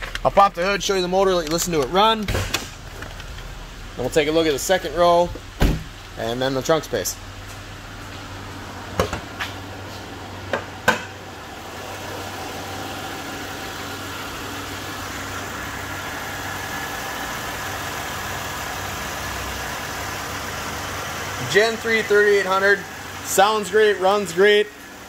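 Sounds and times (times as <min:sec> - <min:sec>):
car engine idling: 0:00.0 - 0:25.0
hood latch clicks and clunk: 0:01.3 - 0:03.5.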